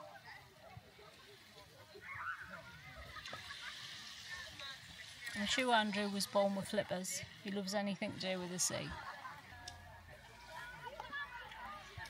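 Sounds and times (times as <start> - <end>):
distant voices and calls: 0.0 - 5.9.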